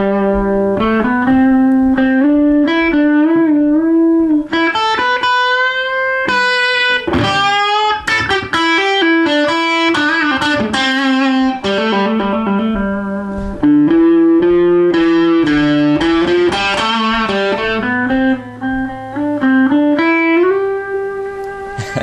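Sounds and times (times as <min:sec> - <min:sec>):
electric guitar lead: 0:00.0 - 0:22.0.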